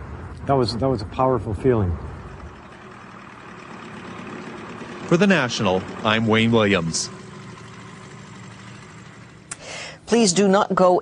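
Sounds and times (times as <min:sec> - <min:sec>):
low hum: 0:00.0 - 0:10.1.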